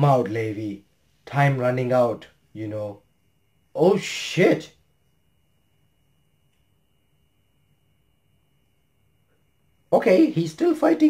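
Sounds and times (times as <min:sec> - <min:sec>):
high-pitched whine: 0:00.0 - 0:11.0
low hum: 0:00.0 - 0:11.0.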